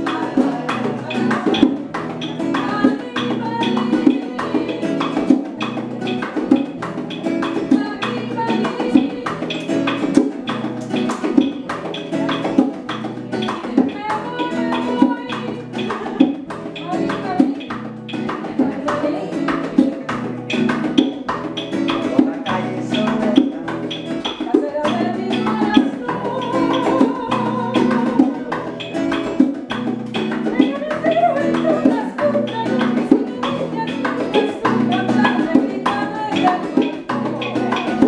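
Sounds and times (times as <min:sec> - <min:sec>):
hand-played bongos: 0:00.0 - 0:38.0
nylon-string guitar: 0:00.0 - 0:38.0
woman singing: 0:00.0 - 0:38.0.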